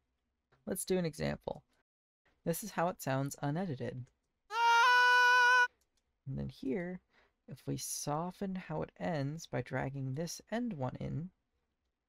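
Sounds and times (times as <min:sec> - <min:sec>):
synthesized singing voice note: 0:04.5 - 0:05.7.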